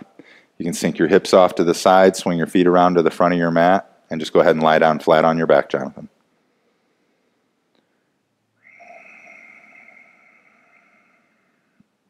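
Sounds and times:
person exhaling: 6.5s - 12.0s.

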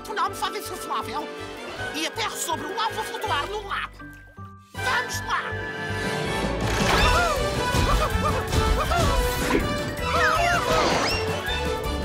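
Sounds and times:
lively music with swooping notes: 0.3s - 12.0s.

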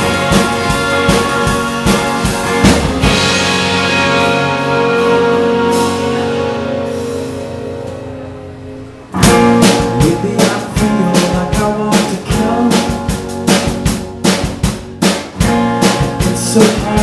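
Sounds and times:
hard drum hits: 0.0s - 4.9s
electric guitar chord: 0.0s - 11.8s
rock band playing: 0.0s - 17.0s.

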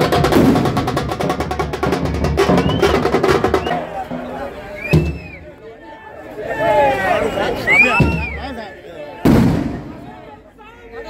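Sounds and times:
firecracker bang: 9.2s - 10.1s.

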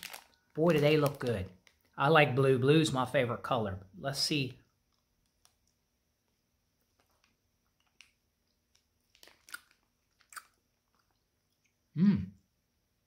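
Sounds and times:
person chewing gummy candy: 6.8s - 11.9s
wet mouth clicks and smacks: 9.2s - 11.8s.

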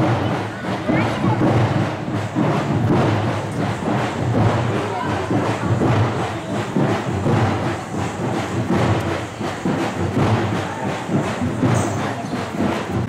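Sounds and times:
loud rhythmic drumming: 0.0s - 13.0s.

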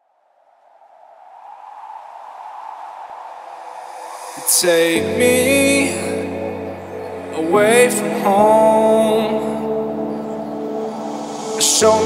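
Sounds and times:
rushing noise: 0.3s - 12.0s.

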